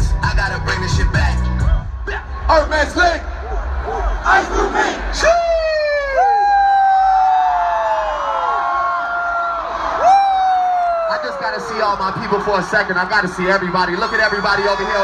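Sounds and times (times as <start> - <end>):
crowd cheering and yelling: 0.0 - 15.0.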